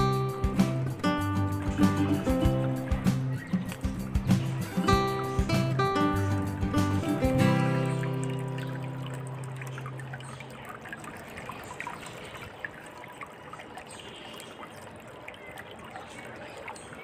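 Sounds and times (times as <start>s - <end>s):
water fountain trickling: 0.0s - 17.0s.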